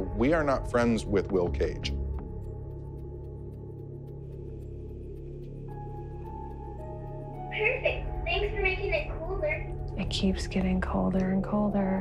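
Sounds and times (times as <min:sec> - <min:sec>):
low steady drone: 0:00.0 - 0:12.0.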